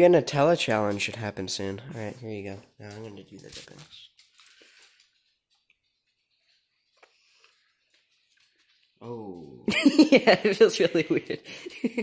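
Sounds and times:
faint soft clicks and rustles: 2.4s - 9.5s.

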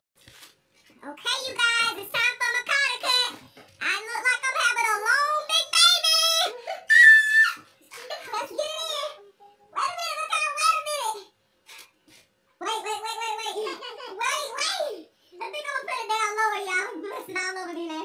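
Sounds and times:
children talking and calling out: 1.1s - 11.3s.

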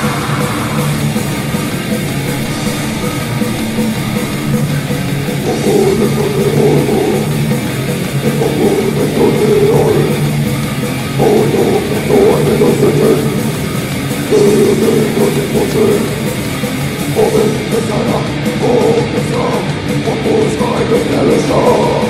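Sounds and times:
grindcore band playing live: 0.0s - 22.0s.

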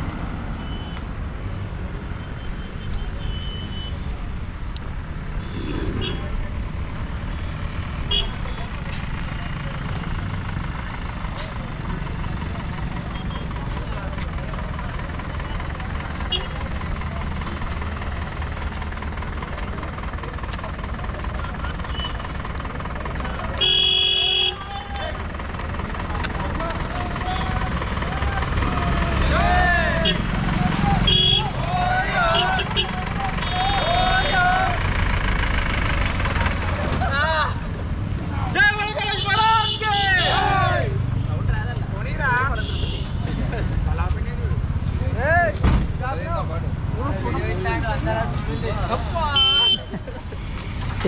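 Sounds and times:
vehicle engine rumble and road noise: 0.0s - 51.0s
vehicle horn honking: 2.4s - 4.1s, 8.1s - 8.6s, 23.6s - 25.1s, 31.0s - 31.6s, 42.6s - 43.2s, 49.2s - 49.9s
people shouting: 28.8s - 34.8s, 39.3s - 41.0s.

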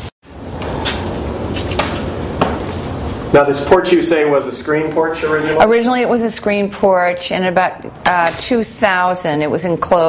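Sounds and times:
indoor room noise: 0.0s - 10.0s.

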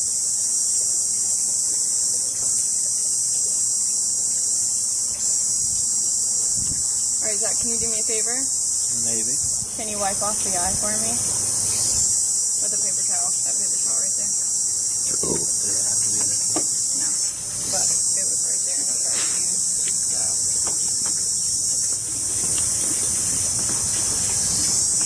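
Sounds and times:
high-pitched insect chorus: 0.0s - 25.0s.

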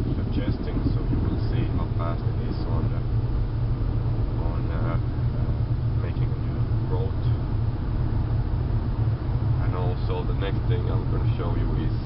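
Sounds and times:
car engine rumble and road noise: 0.0s - 12.0s.

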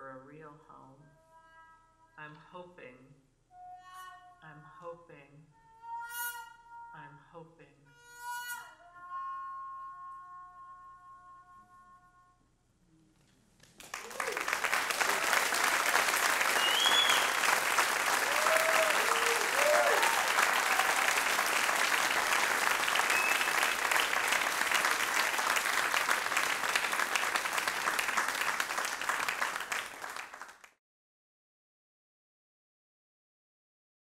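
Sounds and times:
audience applauding: 13.6s - 30.8s
cheers: 13.9s - 30.6s
whistle: 16.4s - 17.5s, 18.4s - 24.6s.

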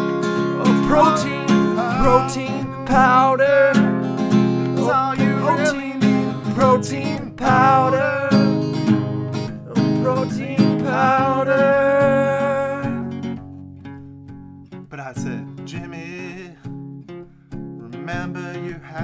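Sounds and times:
bending melody line: 0.0s - 13.4s
acoustic guitar strumming: 0.0s - 19.0s.

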